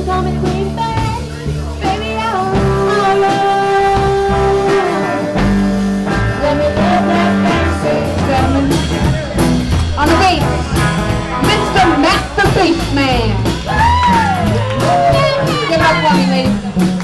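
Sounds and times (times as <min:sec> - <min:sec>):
blues-rock band playing: 0:00.0 - 0:17.0
drum strikes: 0:00.4 - 0:17.0
person singing: 0:01.8 - 0:09.2.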